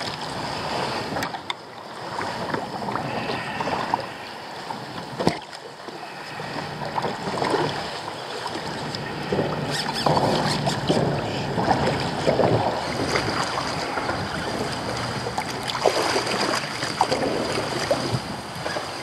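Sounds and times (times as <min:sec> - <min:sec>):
water splashing against kayak hull: 0:00.0 - 0:19.0
wind on microphone: 0:06.0 - 0:19.0.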